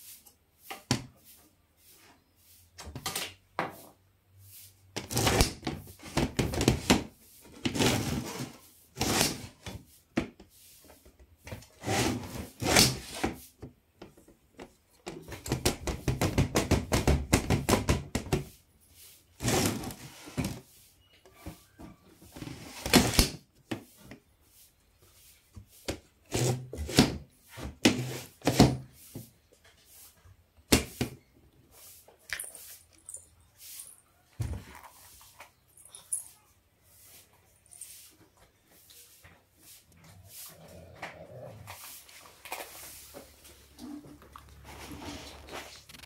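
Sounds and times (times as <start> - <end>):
wooden drawer scraping: 5.0 - 9.5, 19.4 - 20.6.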